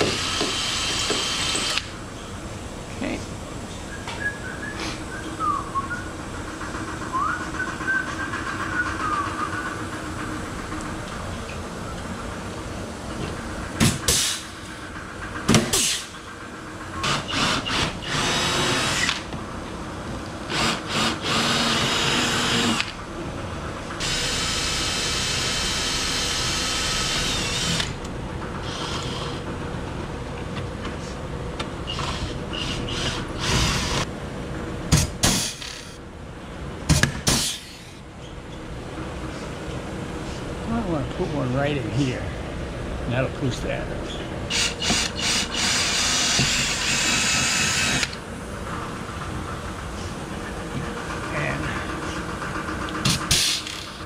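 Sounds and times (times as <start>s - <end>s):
pneumatic air tool bursts: 0.0s - 1.9s, 13.8s - 14.5s, 15.7s - 16.2s, 17.0s - 19.2s, 20.5s - 23.0s, 24.0s - 28.0s, 31.9s - 34.0s, 34.9s - 36.0s, 37.0s - 38.0s, 44.5s - 48.2s, 53.0s - 54.0s.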